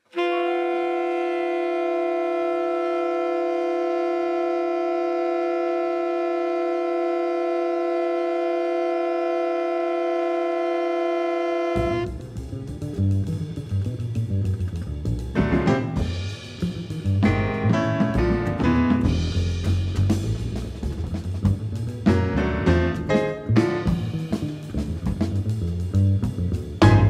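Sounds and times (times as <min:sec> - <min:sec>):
woodwinds holding a chord: 0:00.1 - 0:12.1
band with drums bass and piano: 0:00.2 - 0:02.8, 0:11.6 - 0:27.0.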